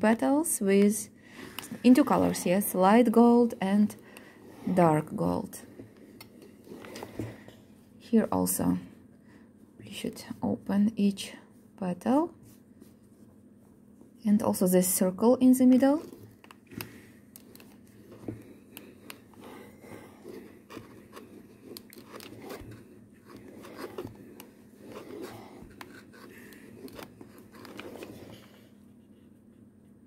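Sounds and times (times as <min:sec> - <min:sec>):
steam iron scraping on cloth: 0:04.4 - 0:05.1.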